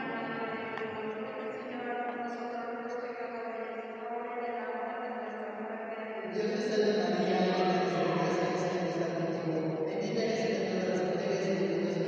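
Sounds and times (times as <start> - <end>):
voices chanting a prayer: 0.0 - 12.0.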